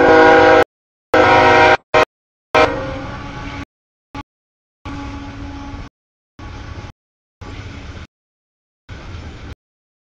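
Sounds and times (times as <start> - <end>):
locomotive air horn blasts: 0.0 - 3.6, 4.9 - 5.9.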